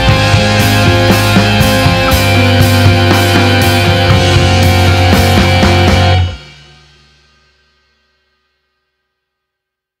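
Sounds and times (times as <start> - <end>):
rock band closing chord: 0.0 - 8.0.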